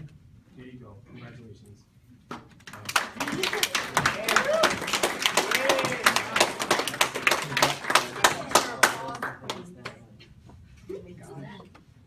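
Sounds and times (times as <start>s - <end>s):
small group applauding: 2.6s - 10.0s.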